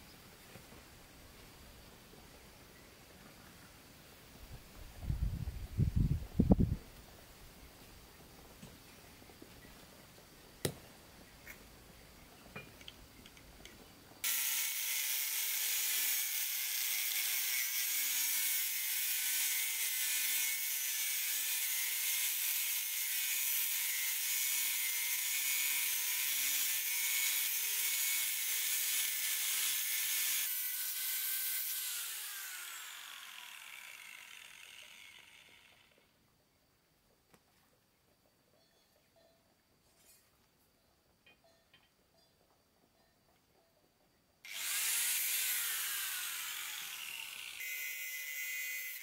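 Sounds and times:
angle grinder cutting brick: 0:14.2 - 0:36.0, 0:44.5 - 0:49.0
grinder disc spinning down: 0:30.5 - 0:36.1, 0:44.5 - 0:49.0.

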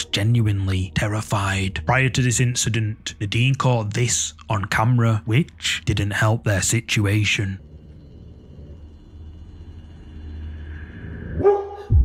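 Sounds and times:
dog growling: 0:07.4 - 0:09.2
dog barking: 0:11.4 - 0:11.9.

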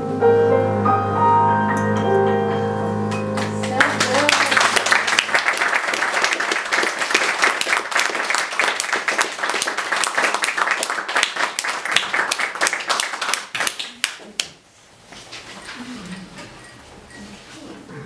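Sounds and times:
piano chord: 0:00.0 - 0:04.6
audience applauding: 0:03.1 - 0:14.5.

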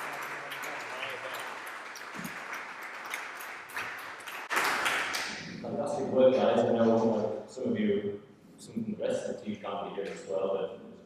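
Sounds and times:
audience clapping: 0:00.0 - 0:05.5.

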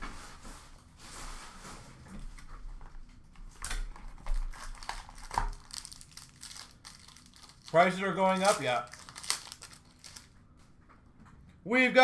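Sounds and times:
card box and wrapper crinkling: 0:04.1 - 0:10.3.

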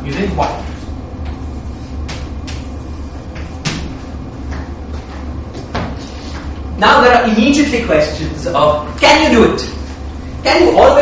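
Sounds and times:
low room hum: 0:00.0 - 0:11.0
chalk tapping and scraping: 0:00.1 - 0:03.8.

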